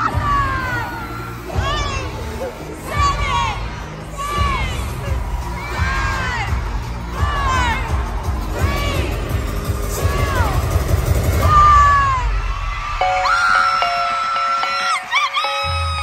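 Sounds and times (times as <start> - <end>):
crowd screaming: 0.0 - 16.0
pop concert music with heavy beat: 0.0 - 16.0.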